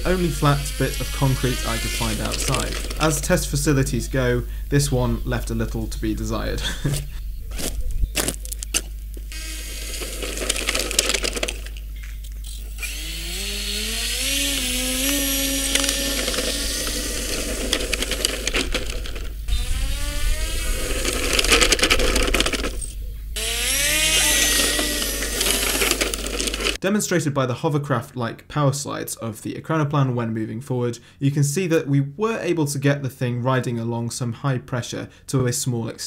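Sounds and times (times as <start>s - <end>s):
electric motor and propeller whining: 0.0s - 4.5s, 9.2s - 11.8s, 12.4s - 26.8s
airy hiss: 0.0s - 7.1s.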